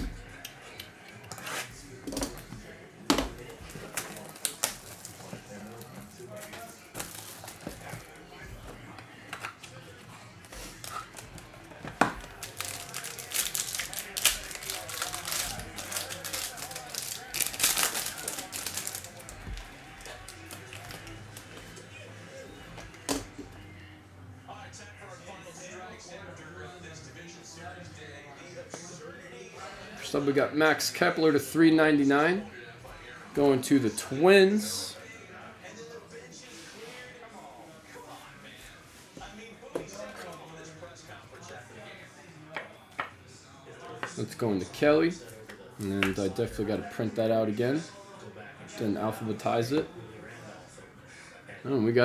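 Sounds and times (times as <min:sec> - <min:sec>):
foil wrapper tearing and crinkling: 0:03.9 - 0:05.2, 0:12.2 - 0:21.1.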